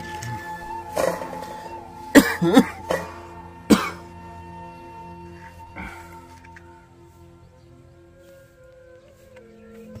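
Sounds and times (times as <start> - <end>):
background music with held notes: 0.0 - 10.0
man coughing: 2.1 - 4.1.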